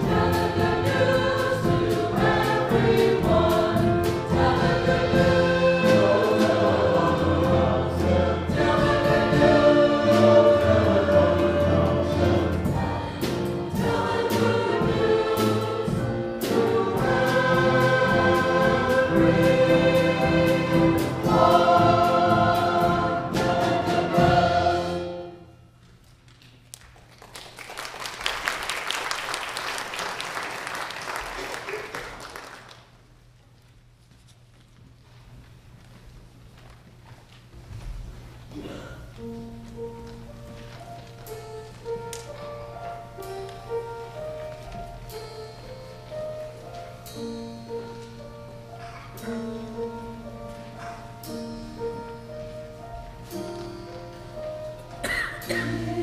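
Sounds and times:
choir singing: 0.0 - 25.6, 54.4 - 56.0
instrumental accompaniment: 0.0 - 26.0, 39.1 - 56.0
congregation applauding: 26.7 - 33.0.

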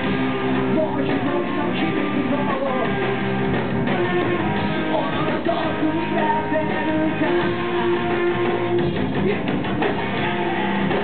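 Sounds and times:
live band music: 0.0 - 11.0
strummed guitar: 0.0 - 11.0.

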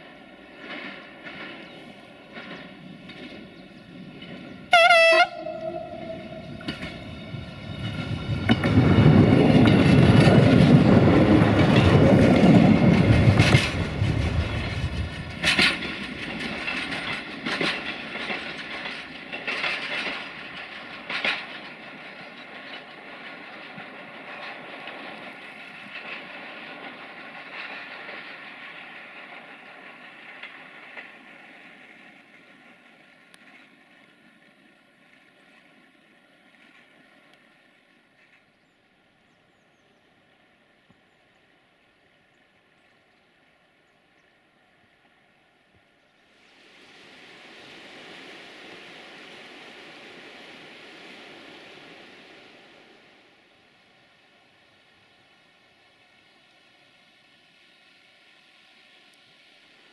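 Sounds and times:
diesel train engine passing: 0.0 - 34.1
train horn blast: 4.7 - 7.4
wheel clicks over rail joints: 5.9 - 31.3.

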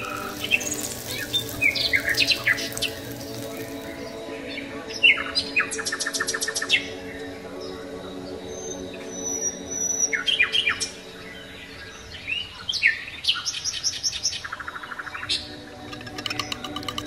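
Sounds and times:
metal spoon beating eggs in bowl: 0.0 - 4.1, 15.8 - 17.0
birds chirping and trilling: 0.0 - 17.0.

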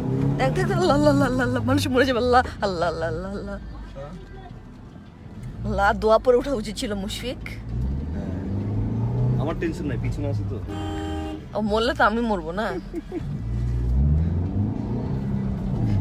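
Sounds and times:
car horn: 10.6 - 11.8.

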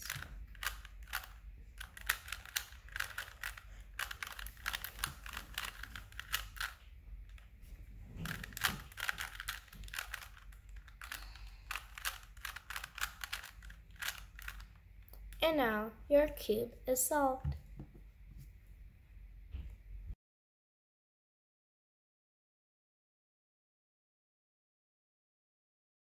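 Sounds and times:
puzzle cube clicking as turned: 0.0 - 7.4, 8.2 - 15.4.

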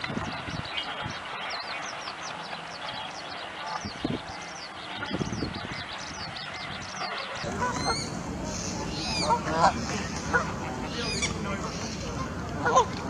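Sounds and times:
geese chattering calls: 7.4 - 13.0
geese honking: 7.4 - 13.0.

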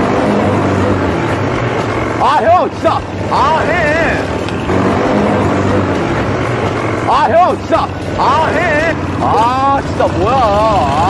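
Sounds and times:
quad bike engine running: 0.0 - 11.0.

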